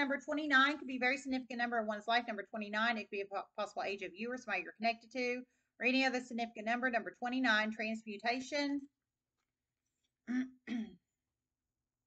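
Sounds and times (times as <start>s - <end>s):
woman clearing her throat: 10.3s - 11.0s.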